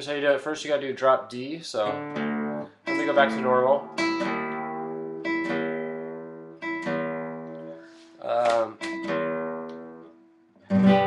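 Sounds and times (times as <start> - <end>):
nylon guitar strings plucked: 1.8 - 11.0.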